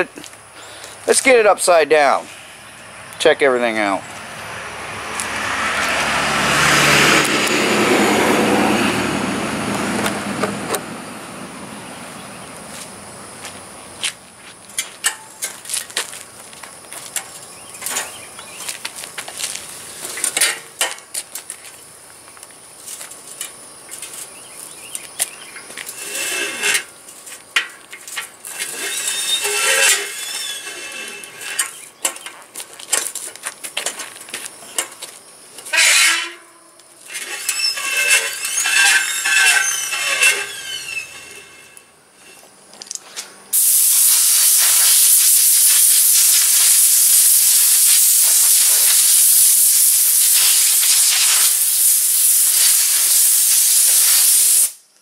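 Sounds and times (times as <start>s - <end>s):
compressed air hissing: 43.5s - 54.8s.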